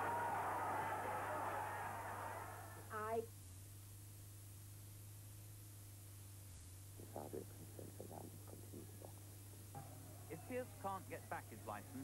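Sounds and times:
steady low hum: 0.0 - 12.0
faint man speaking: 7.0 - 9.3.

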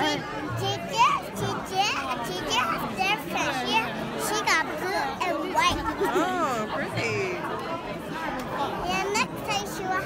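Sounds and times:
voices in the room: 0.0 - 10.0.

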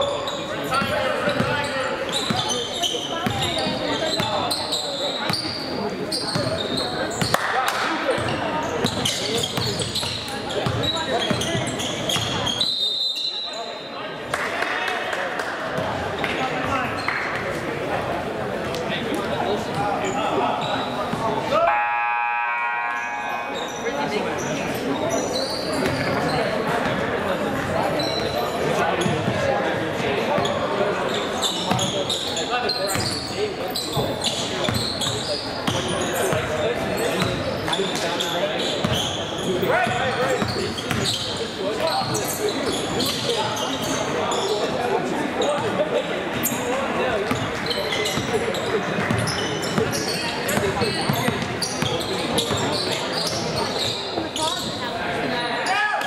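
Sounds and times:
hubbub of voices: 0.0 - 56.0.

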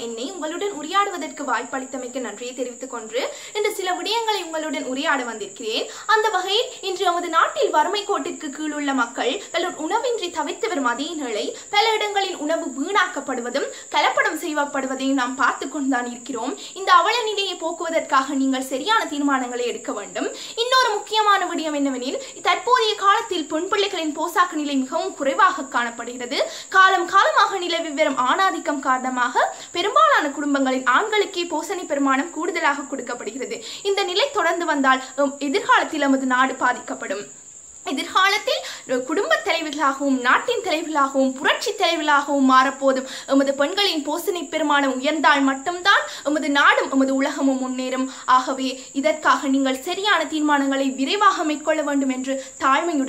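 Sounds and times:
cricket trill: 0.0 - 53.0
young woman speaking: 0.0 - 53.0.

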